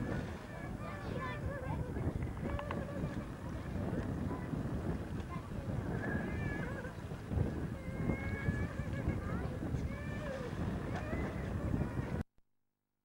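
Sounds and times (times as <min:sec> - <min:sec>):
wind rumbling on microphone: 0:00.0 - 0:12.2.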